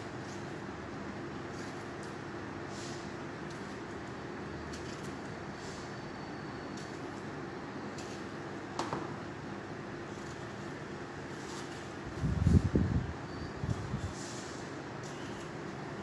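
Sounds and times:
kitchen fan humming: 0:00.0 - 0:16.0.

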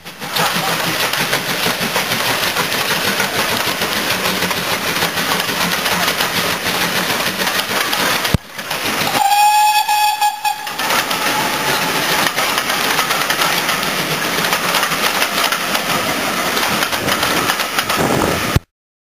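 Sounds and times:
steam locomotive working: 0:00.0 - 0:18.7
locomotive whistle: 0:09.0 - 0:12.2.

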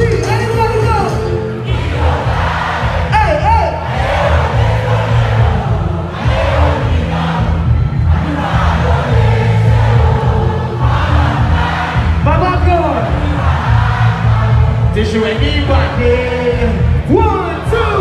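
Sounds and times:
crowd cheering and singing: 0:00.0 - 0:18.0
live band music with heavy bass: 0:00.0 - 0:18.0.

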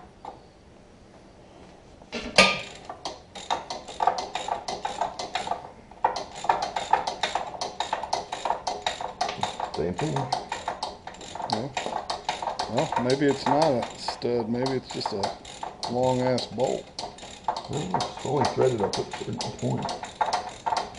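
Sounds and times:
sharp metallic knock: 0:02.2 - 0:02.8
hand ratchet clicking: 0:02.4 - 0:20.9.

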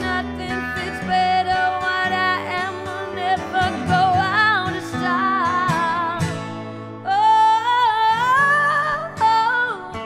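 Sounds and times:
acoustic guitar: 0:00.0 - 0:10.0
woman singing: 0:00.0 - 0:10.0.

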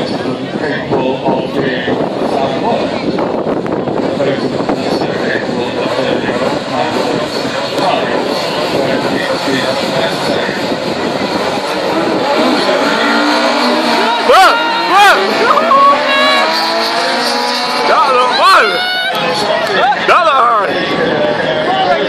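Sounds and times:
rally car engines revving: 0:00.0 - 0:22.0
spectator chatter: 0:00.0 - 0:22.0.

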